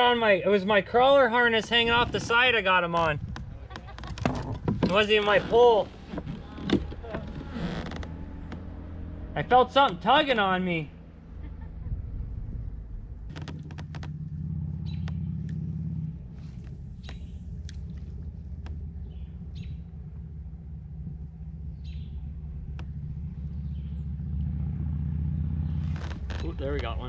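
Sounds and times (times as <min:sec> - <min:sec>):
low rumble: 0:00.8 - 0:27.0
small clicks and knocks: 0:13.3 - 0:14.2
high bird chirps: 0:14.8 - 0:15.5, 0:16.8 - 0:17.6, 0:18.9 - 0:20.0, 0:21.6 - 0:22.5, 0:23.4 - 0:24.2.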